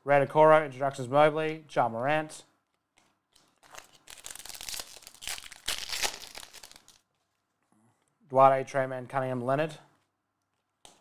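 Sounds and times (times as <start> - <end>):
foil pack crinkling and tearing: 3.4 - 7.2.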